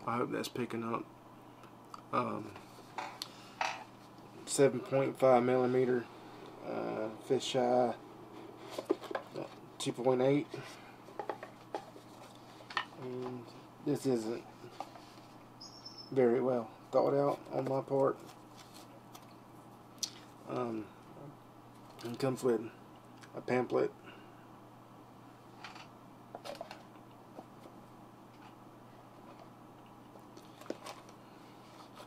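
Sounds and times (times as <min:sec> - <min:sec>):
paper and cardboard rustles: 0:10.4 - 0:13.4, 0:17.3 - 0:19.0, 0:30.5 - 0:32.0.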